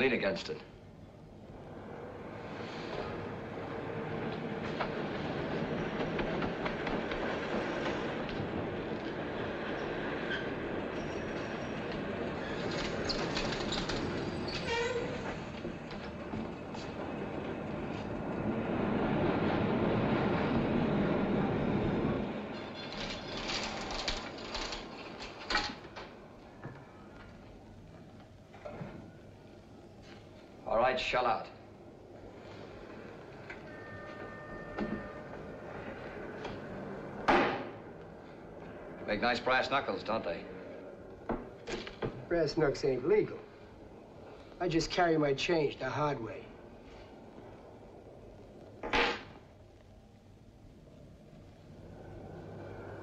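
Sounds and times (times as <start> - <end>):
train rumbling past: 0.0 - 28.0, 29.0 - 48.8, 51.0 - 53.0.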